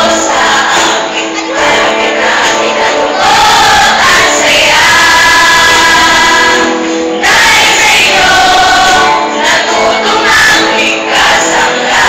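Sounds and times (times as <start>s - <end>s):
young voices singing in chorus: 0.0s - 12.0s.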